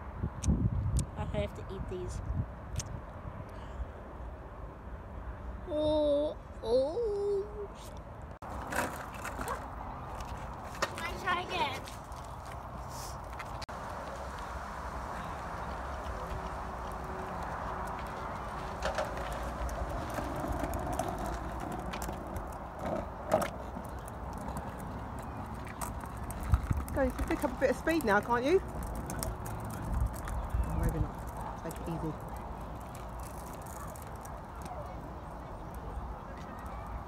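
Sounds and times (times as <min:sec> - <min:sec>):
skateboard wheels rolling on asphalt: 0:08.4 - 0:37.0
skateboard clacks: 0:08.5 - 0:12.0, 0:16.0 - 0:37.0.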